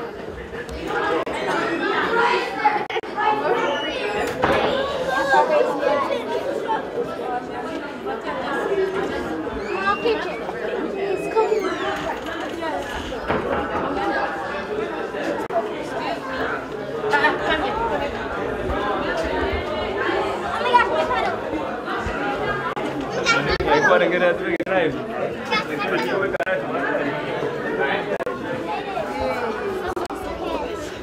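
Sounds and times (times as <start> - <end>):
crowd chattering: 0.0 - 31.0.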